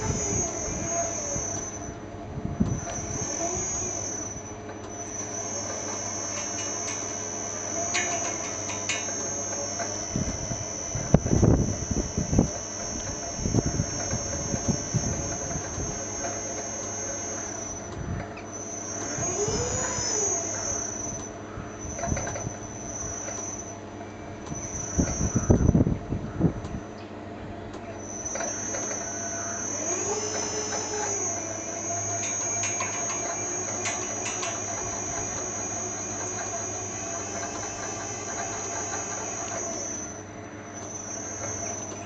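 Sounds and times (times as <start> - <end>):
high-pitched insect trill: 2.8 - 17.9, 18.5 - 23.7, 24.6 - 25.8, 28.0 - 42.0.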